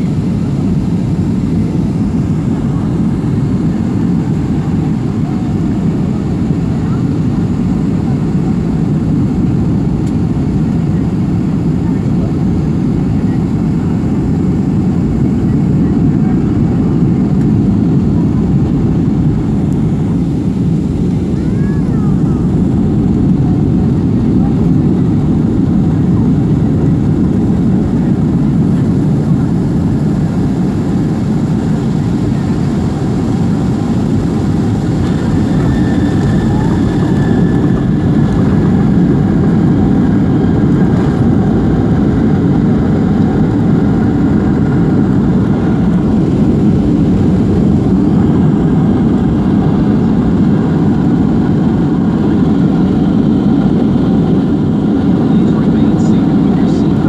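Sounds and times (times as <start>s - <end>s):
airplane cabin engine rumble: 0.0s - 57.0s.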